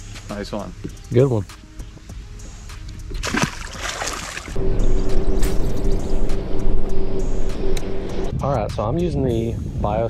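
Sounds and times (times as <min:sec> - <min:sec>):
fish splashing into water: 0:03.2 - 0:04.6
low rumble: 0:04.5 - 0:09.6
steady hum: 0:04.6 - 0:08.3.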